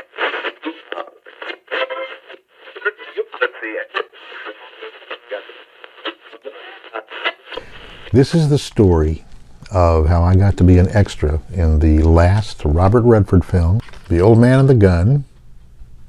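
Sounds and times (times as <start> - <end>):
tinny radio speech: 0.2 - 9.1.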